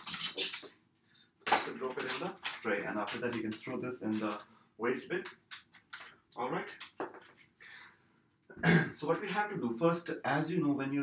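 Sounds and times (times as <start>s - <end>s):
plastic pack tearing open: 1.9s - 4.4s.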